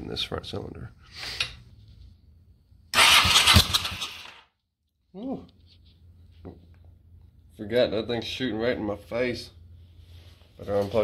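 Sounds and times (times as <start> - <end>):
motorcycle engine cranking on starter: 2.9 - 4.4.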